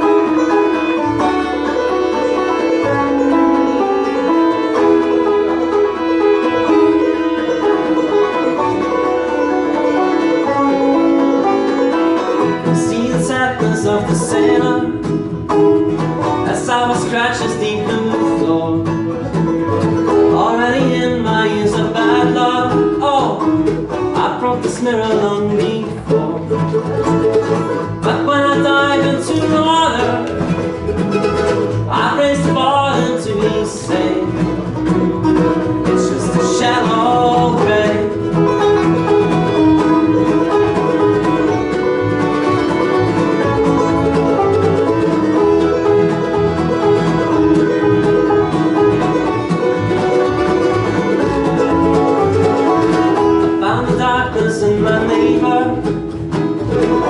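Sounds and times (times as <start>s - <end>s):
banjo picking: 0.0s - 57.0s
fiddle: 0.0s - 57.0s
guitar: 0.0s - 57.0s
mandolin: 0.0s - 57.0s
upright bass: 0.0s - 57.0s.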